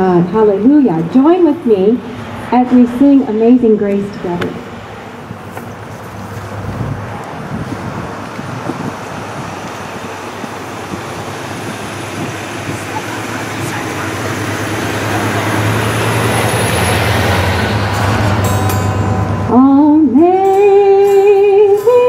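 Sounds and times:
vehicle engine hum and road noise: 0.0 - 22.0.

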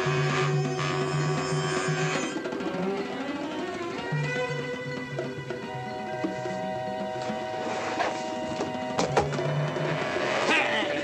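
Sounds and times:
film score held tones: 0.0 - 11.0.

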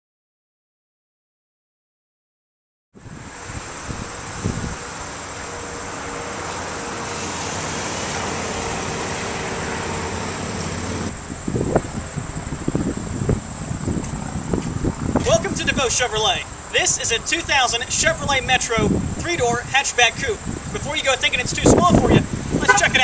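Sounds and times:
road traffic noise: 3.0 - 23.0
high insect chirring: 3.1 - 21.8.

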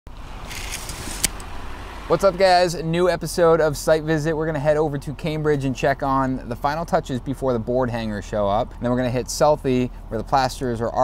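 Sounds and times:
sharp click: 0.5 - 1.5.

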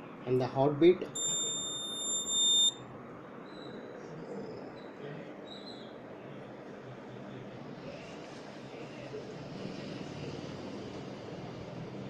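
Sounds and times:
high-pitched buzzer beep: 1.2 - 2.8.

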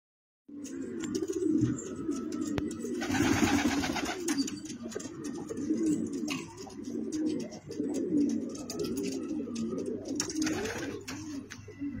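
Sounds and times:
pigeons cooing: 0.5 - 12.0.

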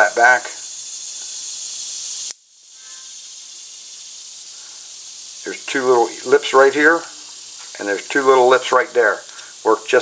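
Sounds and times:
steady hiss: 0.0 - 10.0.

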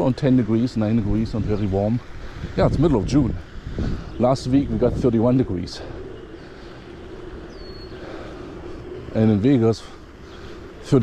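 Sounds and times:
low street rumble: 0.0 - 11.0
high downward bird chirp: 6.0 - 11.0.

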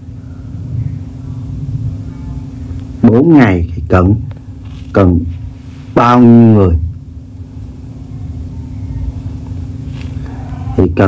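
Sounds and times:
faint constant hum: 0.0 - 11.0
low background rumble: 0.0 - 11.0.

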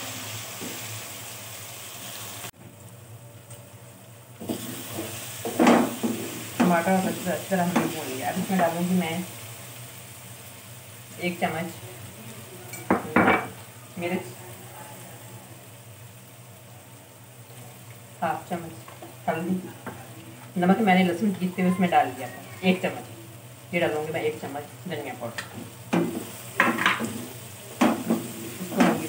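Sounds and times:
vegetables sizzling in oil: 0.0 - 29.0.

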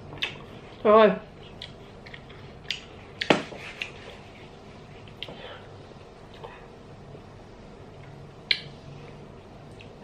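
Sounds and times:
quiet chewing: 0.1 - 5.6
wet mouth clicks: 8.5 - 8.7.

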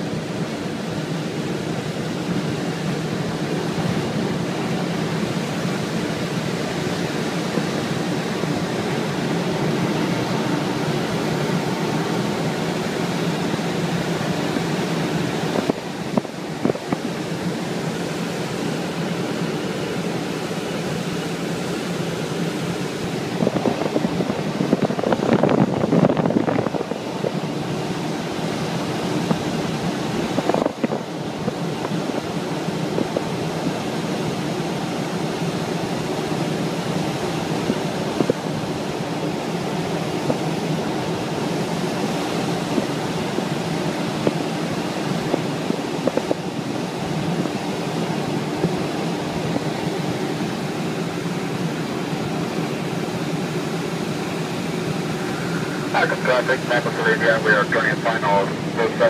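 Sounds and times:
air rushing in glider cockpit: 0.0 - 59.0
propeller plane engine drone: 0.0 - 59.0.

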